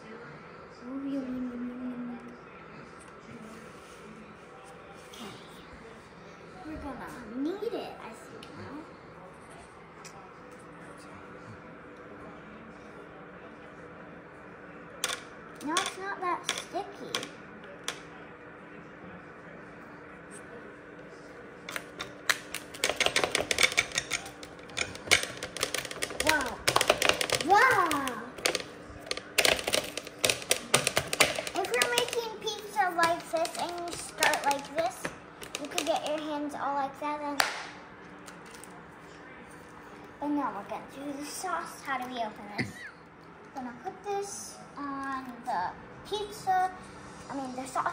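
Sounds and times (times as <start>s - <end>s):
child's voice: 0.8s - 2.3s, 6.7s - 8.8s, 26.2s - 26.7s, 27.3s - 28.4s, 31.6s - 37.4s, 40.2s - 42.7s, 43.6s - 47.9s.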